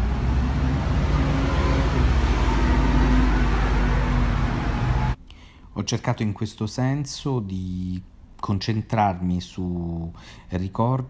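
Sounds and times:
rumble of passing traffic: 0.0s - 5.2s
faint engine hum: 0.0s - 5.6s.

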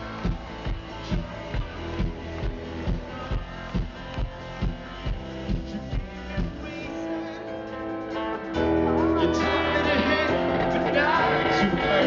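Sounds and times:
electric guitar: 0.0s - 12.0s
rock band playing live: 0.0s - 12.0s.

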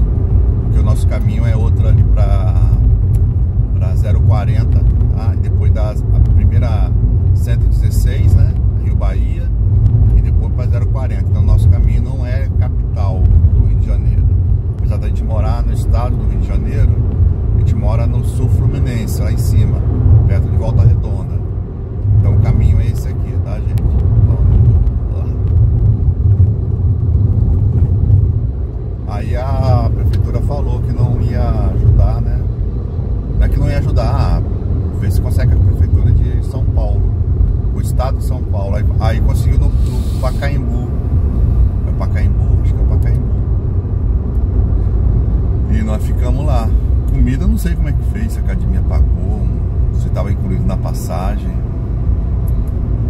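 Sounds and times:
road and engine rumble in car: 0.0s - 53.0s.

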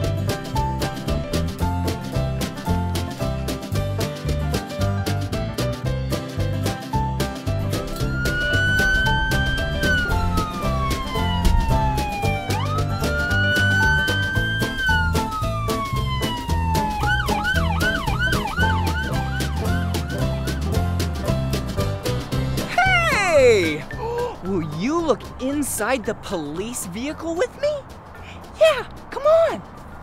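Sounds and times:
upbeat music with steady beat: 0.0s - 26.7s
police siren wailing and yelping: 7.9s - 20.2s.

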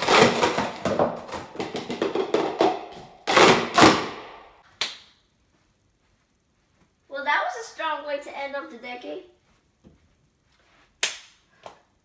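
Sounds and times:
plastic cups clattering: 0.0s - 4.0s.

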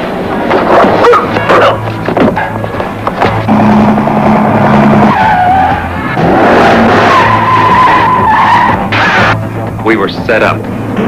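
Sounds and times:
action music score: 0.1s - 11.0s
car tyres squealing: 0.5s - 9.4s.

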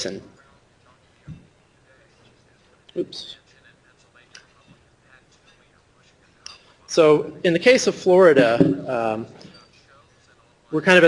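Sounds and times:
faint whispery voice: 0.0s - 6.9s
man speaking: 0.0s - 11.0s.

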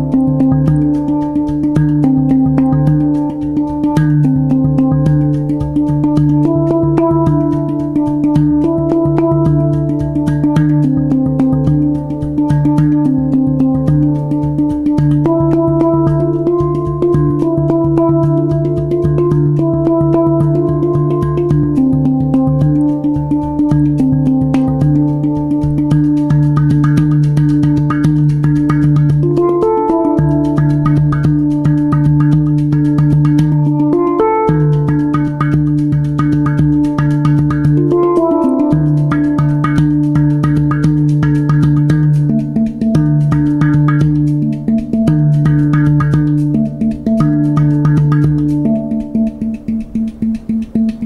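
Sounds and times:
handpan melody: 0.0s - 51.0s.

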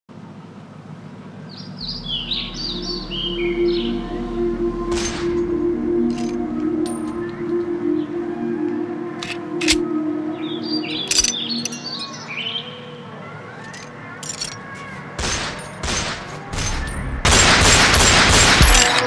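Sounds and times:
low synth pad: 0.1s - 19.0s
short high notes: 1.8s - 12.2s
percussion hits: 2.2s - 7.8s.

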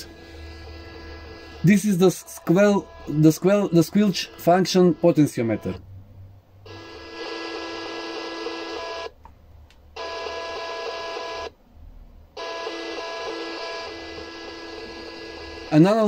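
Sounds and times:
radio static hiss: 0.0s - 5.8s
steady radio tones: 0.0s - 5.8s.

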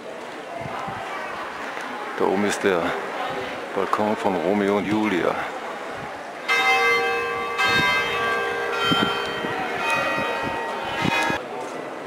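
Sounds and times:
large bell tolling: 6.5s - 11.4s.

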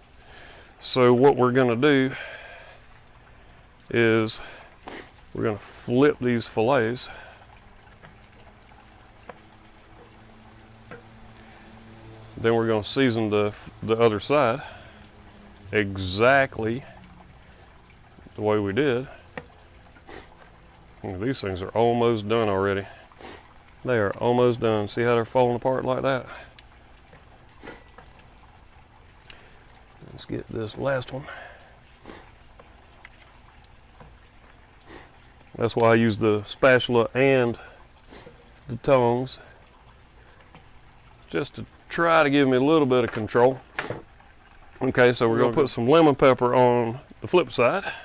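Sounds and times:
low steady hum: 0.0s - 48.0s.

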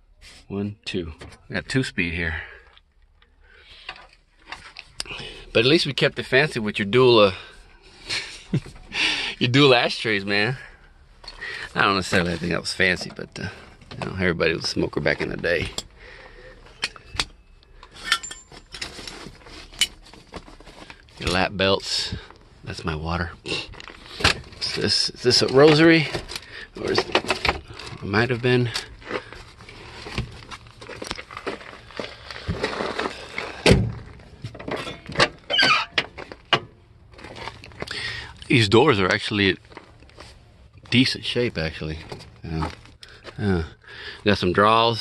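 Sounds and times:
knocks and rattles handling car parts: 12.0s - 16.0s, 25.4s - 28.0s, 32.5s - 37.9s
metal buckles clinking: 16.7s - 20.0s.

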